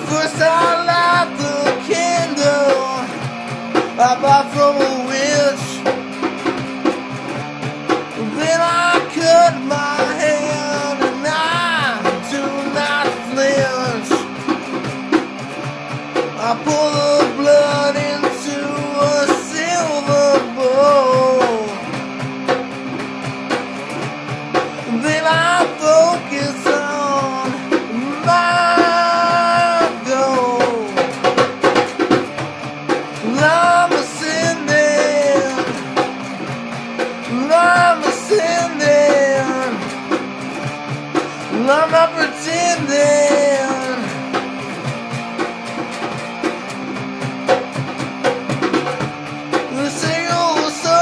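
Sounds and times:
rock band music: 0.0 - 51.0.

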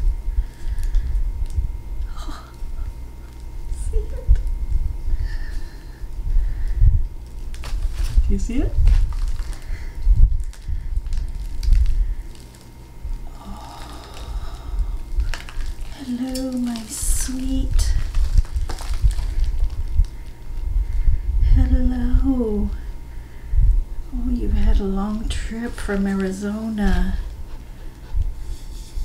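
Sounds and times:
packing fill rustling and crackling: 0.4 - 4.5, 7.1 - 21.0, 24.7 - 29.0
fiberfill being pulled: 5.1 - 21.1.

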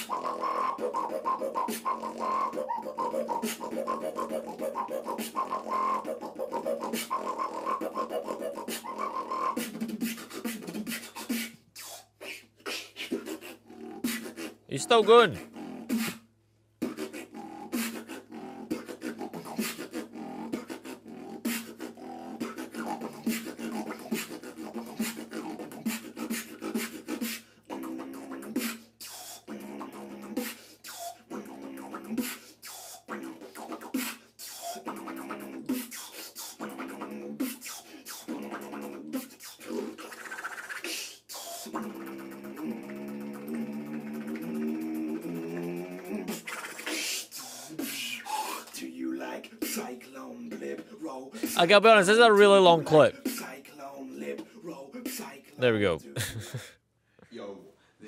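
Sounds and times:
beatboxing: 0.0 - 56.7.

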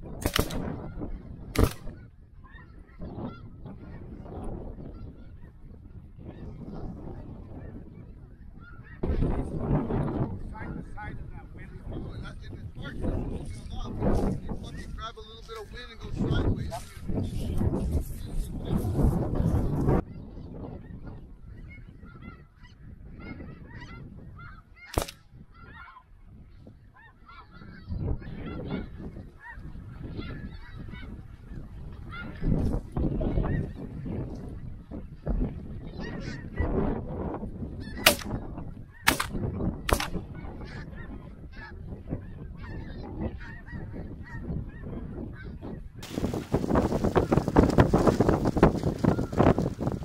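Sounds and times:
wind rumble on microphone: 0.0 - 50.0
sharp clicks: 0.2 - 0.6, 39.1 - 40.2
chorus of geese calling: 0.9 - 4.2, 21.4 - 32.5, 40.3 - 50.0.

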